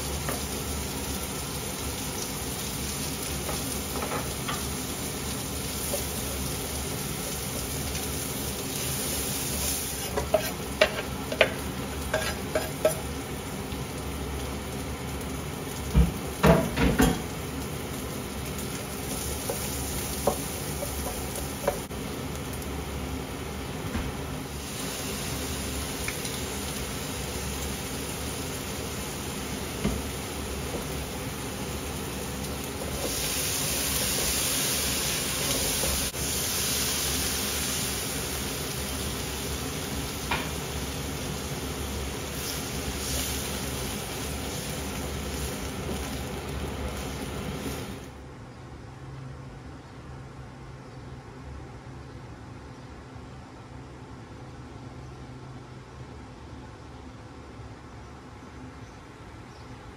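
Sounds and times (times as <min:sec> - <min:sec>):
food sizzling in a wok: 0:00.0 - 0:48.2.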